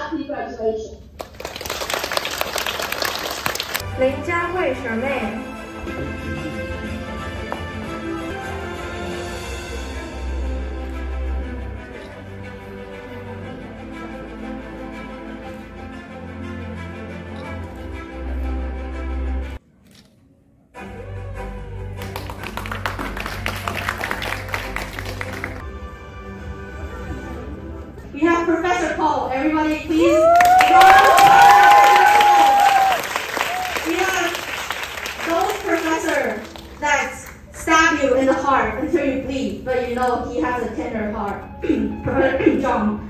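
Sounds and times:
audience clapping: 0:01.1 - 0:03.9, 0:21.9 - 0:25.6, 0:30.2 - 0:37.5
small group applauding: 0:01.2 - 0:03.8, 0:21.9 - 0:25.6, 0:30.0 - 0:37.4
music: 0:03.7 - 0:19.6, 0:20.7 - 0:32.4, 0:40.0 - 0:43.0.

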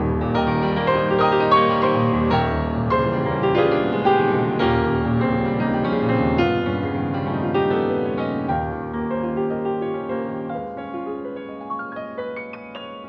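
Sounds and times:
solo grand piano: 0:00.0 - 0:13.0.

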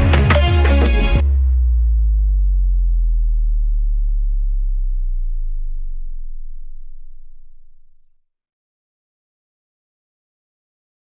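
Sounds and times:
deep synth bass note sliding down: 0:01.1 - 0:08.2.

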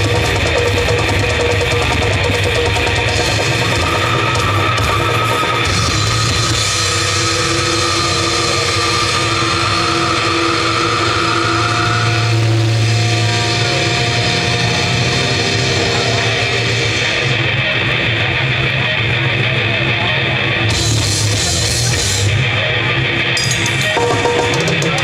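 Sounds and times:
death metal band playing live: 0:00.0 - 0:25.0
heavily distorted guitars: 0:00.0 - 0:25.0
heavy bass: 0:00.0 - 0:25.0.

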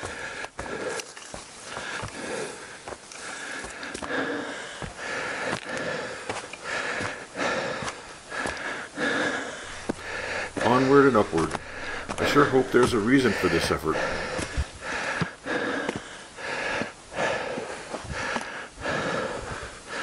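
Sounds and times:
person breathing hard: 0:00.0 - 0:20.0
footsteps on dirt path: 0:09.6 - 0:14.8.

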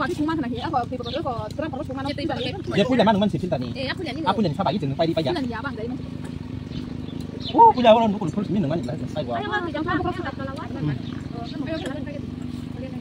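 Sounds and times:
people talking: 0:00.0 - 0:06.0, 0:07.5 - 0:13.0
loud exclamation: 0:07.5 - 0:07.8.

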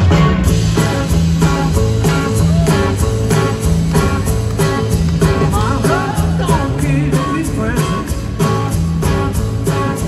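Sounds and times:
bass: 0:00.0 - 0:10.0
drum beat: 0:00.0 - 0:10.0
electric guitar: 0:00.0 - 0:10.0
male lead vocal: 0:05.5 - 0:08.4.

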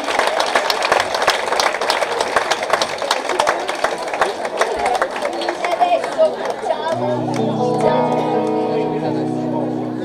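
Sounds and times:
electric guitar picking a chord: 0:06.9 - 0:10.0.

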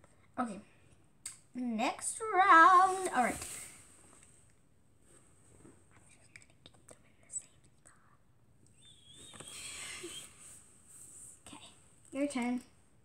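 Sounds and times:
soft whispering: 0:05.8 - 0:08.4, 0:11.0 - 0:12.3.

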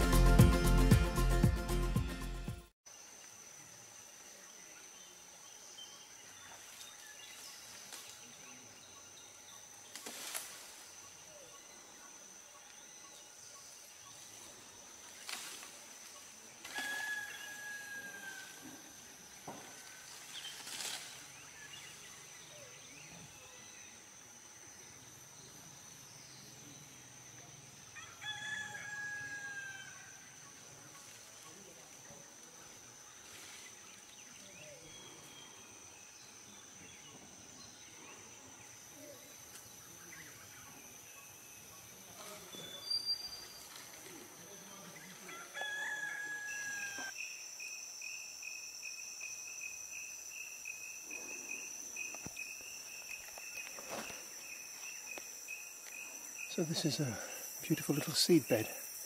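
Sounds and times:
high insect drone: 0:02.9 - 0:59.0.

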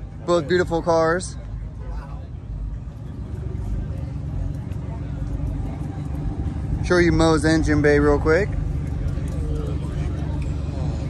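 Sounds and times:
faint voices: 0:00.0 - 0:11.0
low rumble of vehicles: 0:00.0 - 0:11.0.

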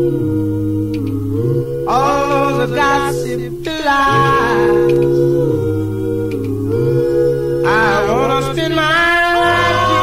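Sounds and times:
bass voice singing: 0:00.0 - 0:10.0
vocal group singing harmony: 0:00.0 - 0:10.0.

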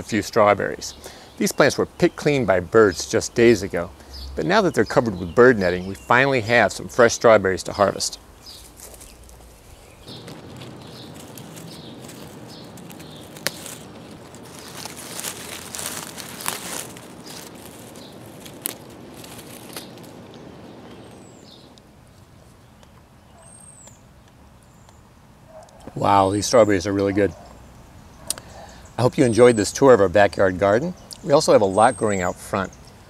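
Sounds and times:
crackling dry leaves: 0:00.0 - 0:24.8
hands rustling through plants: 0:05.7 - 0:22.6.

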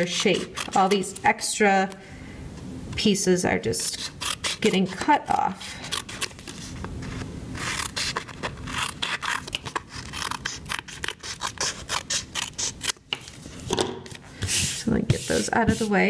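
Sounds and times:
scissors snipping cardstock: 0:07.6 - 0:13.3.

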